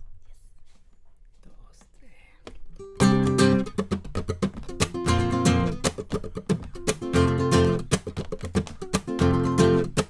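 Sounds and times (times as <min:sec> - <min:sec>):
plucked acoustic guitar note: 0:02.8 - 0:10.0.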